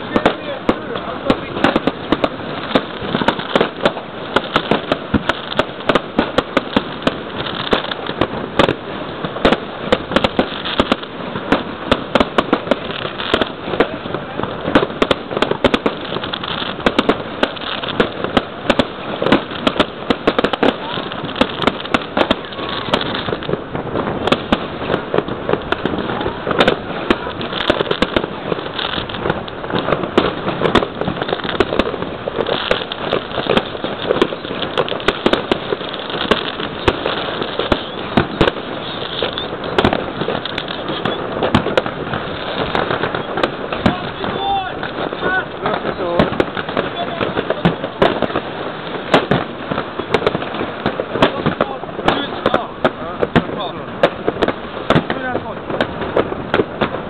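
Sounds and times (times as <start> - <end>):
fireworks bangs and crackles: 0.0 - 57.0.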